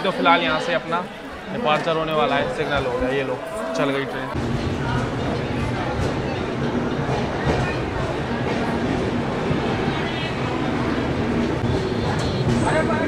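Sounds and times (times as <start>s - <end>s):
voices of people: 0.0s - 13.0s
train coach rumble: 4.3s - 13.0s.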